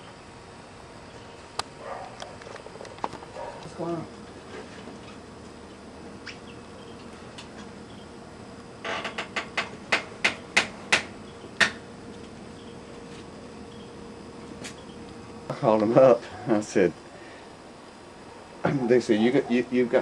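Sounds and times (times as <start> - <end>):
sharp knocks: 9.0 - 11.8.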